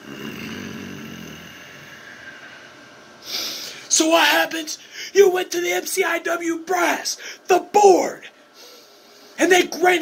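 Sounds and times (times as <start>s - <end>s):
man's rough snore-like exhalation: 0.0s - 2.0s
sharp intake of breath: 1.5s - 3.9s, 4.8s - 5.2s, 7.2s - 7.5s, 8.5s - 9.4s.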